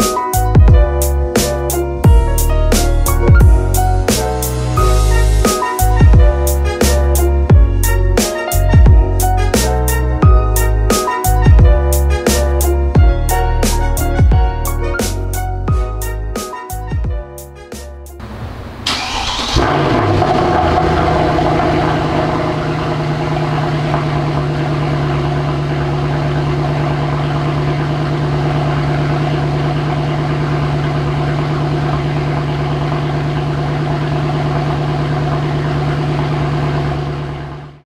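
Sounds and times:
car engine starting and idling: 0.4 - 10.9, 17.7 - 37.8.

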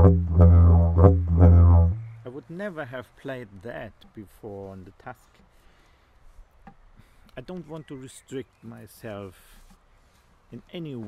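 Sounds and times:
faint low rumble: 0.0 - 2.4.

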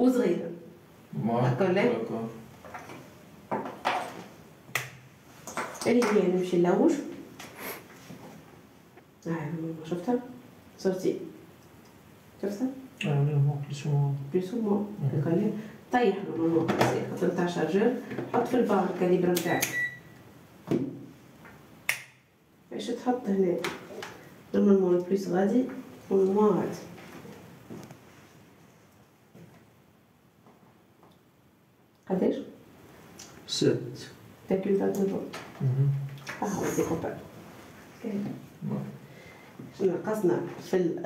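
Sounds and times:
person speaking: 33.4 - 37.3.

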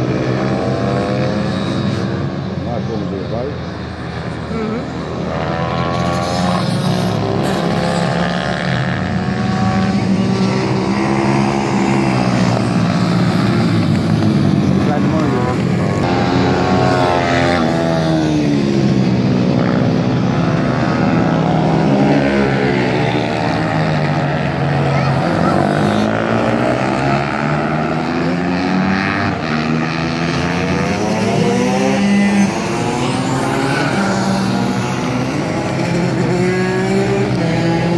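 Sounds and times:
racing motorcycle engines: 0.0 - 37.9.

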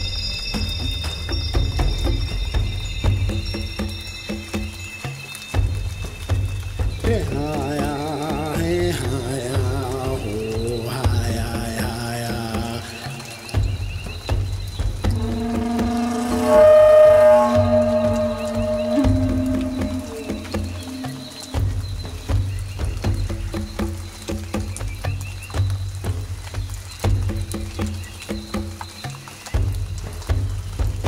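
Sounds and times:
rain and nature sounds: 0.0 - 31.0
low pulsing rumble: 15.0 - 22.0
flute playing long notes: 15.1 - 21.6.

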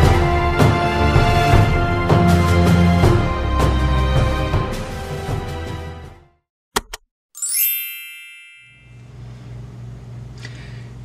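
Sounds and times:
bell-like notification chime: 7.4 - 9.3.

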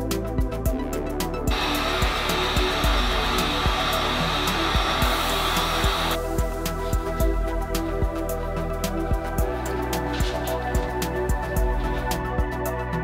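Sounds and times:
electronic music with steady beat: 0.0 - 13.0
heat gun blowing: 1.5 - 7.1.

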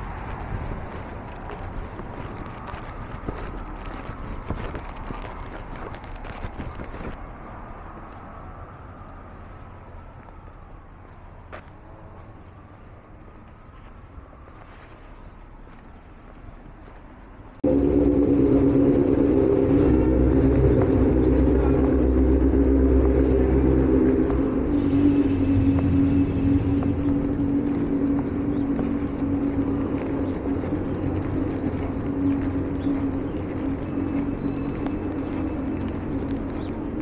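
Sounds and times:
steady low tones: 17.6 - 37.0
train rumbling past: 17.6 - 37.0.

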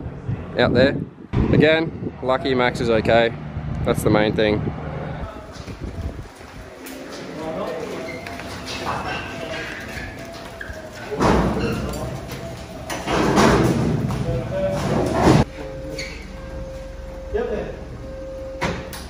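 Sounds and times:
people's voices: 0.0 - 18.0.

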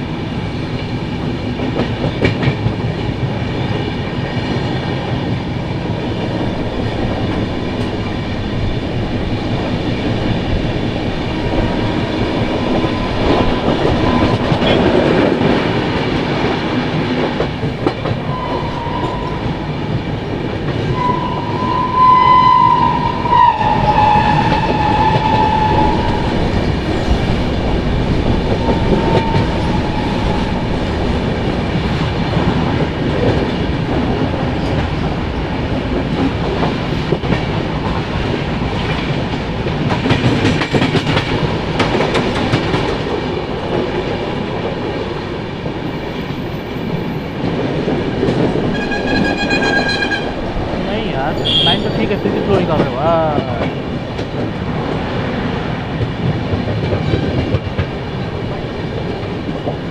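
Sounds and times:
train wheels clattering on track: 0.0 - 59.9
train horn: 18.3 - 19.6, 20.9 - 26.5, 28.5 - 30.7, 48.7 - 50.4, 51.4 - 52.0.

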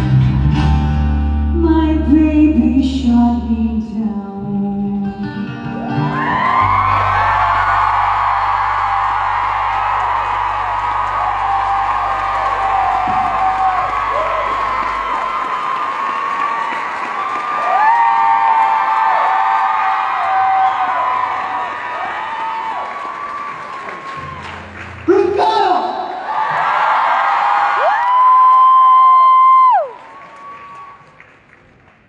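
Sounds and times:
concert crowd cheering and screaming: 5.7 - 25.0, 25.6 - 31.2.

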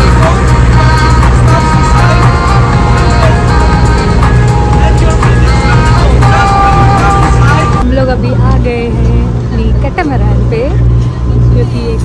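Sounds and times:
woman talking: 7.8 - 10.8, 11.5 - 12.0.

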